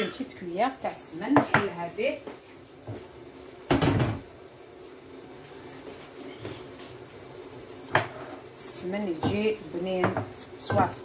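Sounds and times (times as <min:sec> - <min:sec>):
faint kitchen hum: 0:00.0 - 0:11.0.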